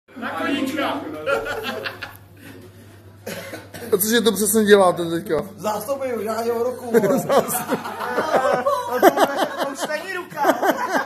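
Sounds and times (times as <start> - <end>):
person coughing: 3.2 - 4.0.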